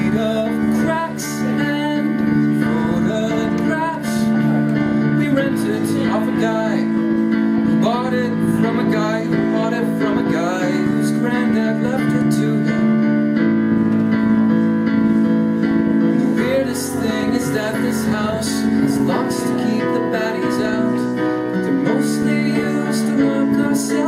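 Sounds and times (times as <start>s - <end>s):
man singing: 0.0s - 13.4s, 16.0s - 24.0s
piano playing sustained chords: 0.0s - 24.0s.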